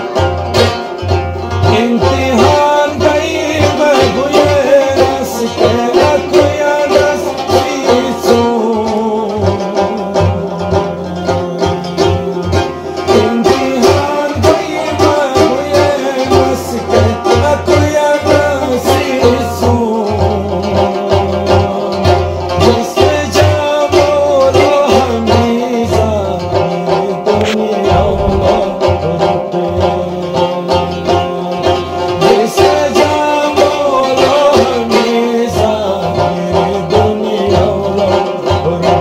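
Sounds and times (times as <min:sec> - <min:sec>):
plucked melodic accompaniment: 0:00.0 - 0:39.0
man singing: 0:01.6 - 0:11.6, 0:12.9 - 0:39.0
frame drum beat: 0:27.3 - 0:29.8.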